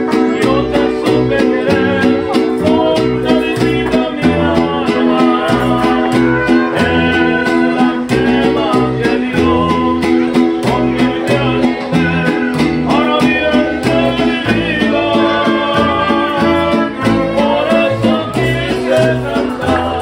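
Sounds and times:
mariachi band playing: 0:00.0 - 0:20.0.

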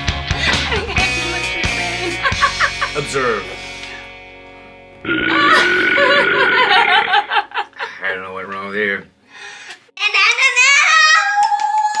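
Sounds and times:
person belching: 0:05.0 - 0:07.3.

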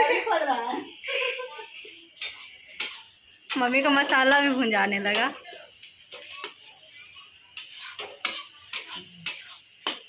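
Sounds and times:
metal spatula scraping a pan: 0:01.9 - 0:10.0.

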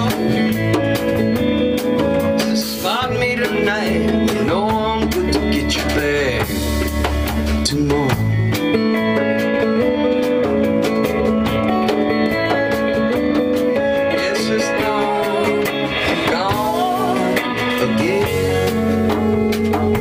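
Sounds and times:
bent electric guitar notes: 0:00.0 - 0:20.0
live rock band playing: 0:00.0 - 0:20.0.

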